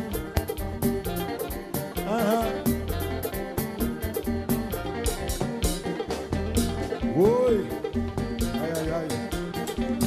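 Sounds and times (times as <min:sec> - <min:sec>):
live dance band playing: 0:00.0 - 0:10.0.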